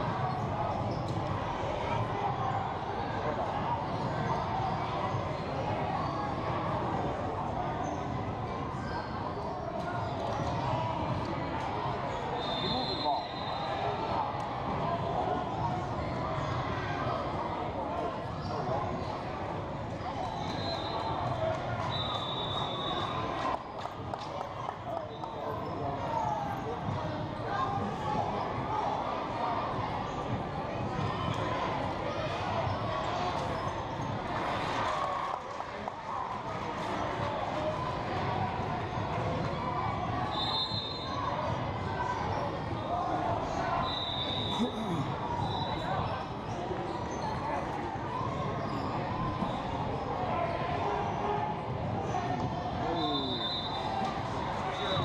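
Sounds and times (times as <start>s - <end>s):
murmur of voices: 0.0s - 55.0s.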